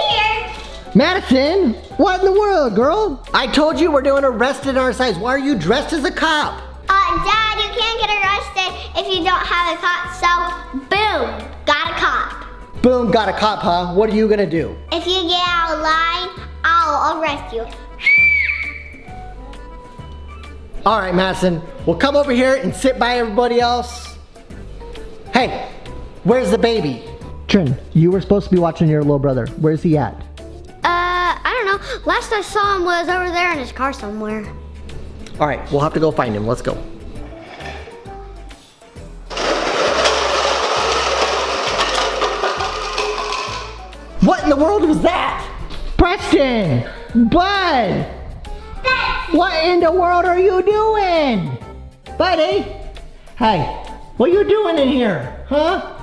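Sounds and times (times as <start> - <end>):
background music: 0.0 - 56.0
high whistle-like tone: 18.0 - 19.1
plastic cups clattering on stone floor: 39.3 - 44.0.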